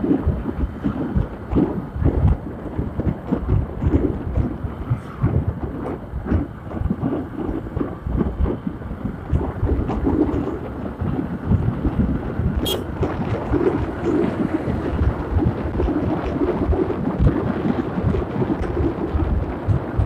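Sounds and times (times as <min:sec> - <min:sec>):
motorbike running: 0:00.0 - 0:20.0
road noise: 0:00.0 - 0:20.0
wind buffeting microphone: 0:00.0 - 0:20.0.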